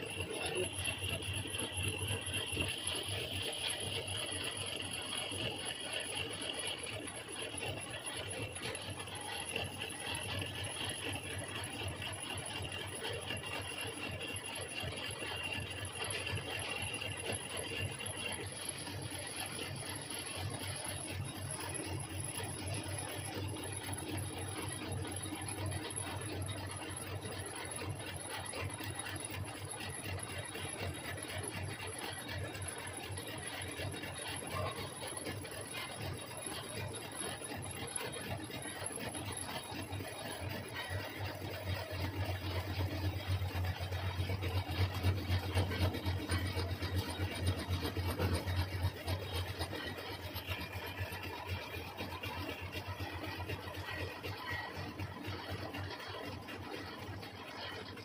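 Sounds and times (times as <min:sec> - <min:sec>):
metal lathe humming: 0:00.0 - 0:54.8
rattly metal cutting noise: 0:00.0 - 0:58.0.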